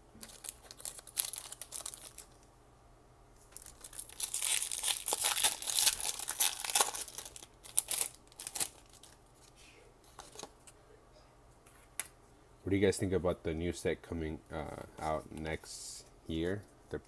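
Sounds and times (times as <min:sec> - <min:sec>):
foil wrapper crinkling: 0:00.2 - 0:02.4, 0:03.5 - 0:09.4
foil wrapper tearing: 0:00.2 - 0:02.4, 0:03.6 - 0:09.2.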